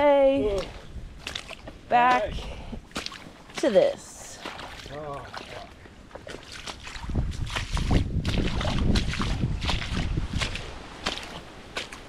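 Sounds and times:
wind rumble on microphone: 0:00.0 - 0:02.9, 0:06.6 - 0:11.7
footsteps splashing through water: 0:00.4 - 0:12.0.

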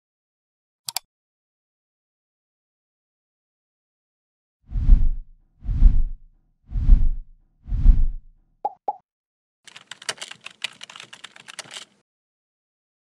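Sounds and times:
deep whooshing thumps: 0:04.7 - 0:08.3
computer keyboard typing: 0:09.7 - 0:12.0.

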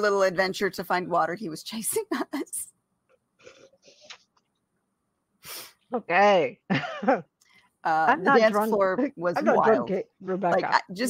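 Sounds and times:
sharp breath burst: 0:05.4 - 0:05.8
person speaking: 0:07.9 - 0:11.0.

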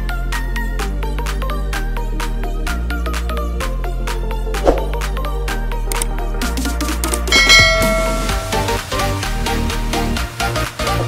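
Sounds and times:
electronic background music: 0:04.3 - 0:09.5
notification bell chime: 0:07.3 - 0:09.1.

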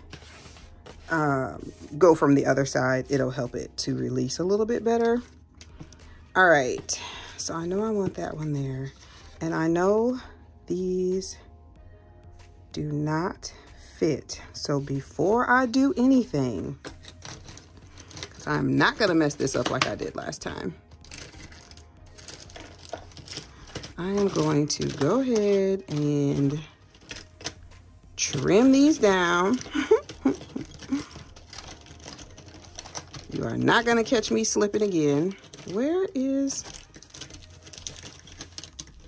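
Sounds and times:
pens rattling in pencil pouch: 0:00.0 - 0:10.1, 0:14.5 - 0:39.0
soft background music: 0:00.0 - 0:39.0.

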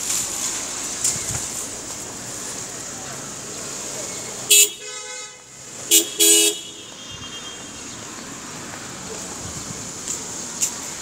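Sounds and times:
street traffic noise: 0:00.0 - 0:11.0
car horn honking: 0:04.5 - 0:08.0.

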